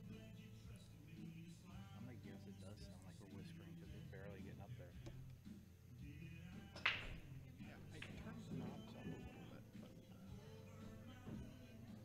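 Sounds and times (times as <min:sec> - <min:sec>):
music: 0:00.0 - 0:12.0
murmur of voices: 0:01.2 - 0:12.0.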